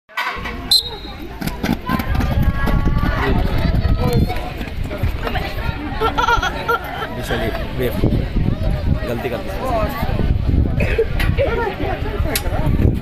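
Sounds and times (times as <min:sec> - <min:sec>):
people talking and calling out: 0:00.2 - 0:13.0
high whistle blast: 0:00.7 - 0:01.2.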